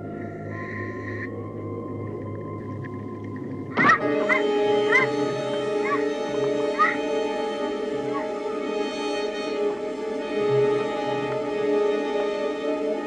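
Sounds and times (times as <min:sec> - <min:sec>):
held orchestral tones: 0:00.0 - 0:13.0.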